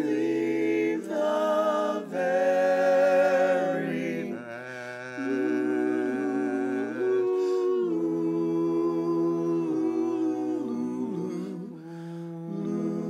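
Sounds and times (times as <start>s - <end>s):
vocal quartet humming chords: 0.0s - 13.0s.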